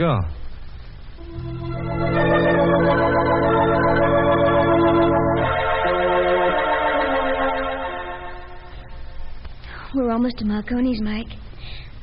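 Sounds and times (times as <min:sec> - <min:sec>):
organ sustained chord: 0:01.2 - 0:09.4.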